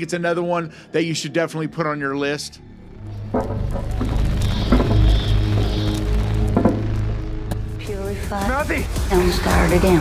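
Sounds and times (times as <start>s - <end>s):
deep steady drone: 0.0s - 10.0s.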